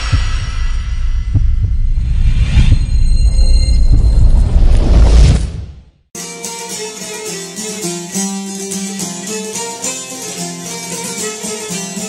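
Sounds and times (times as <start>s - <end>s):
deep bass thumps: 0.0s - 5.8s
low rumble: 0.0s - 6.0s.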